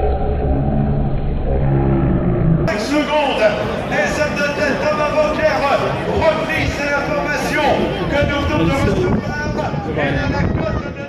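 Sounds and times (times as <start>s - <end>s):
people talking: 2.7s - 11.0s.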